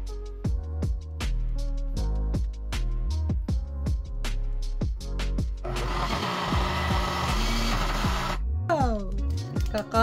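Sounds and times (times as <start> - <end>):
background music: 0.0 - 10.0
blender whirring: 5.6 - 8.4.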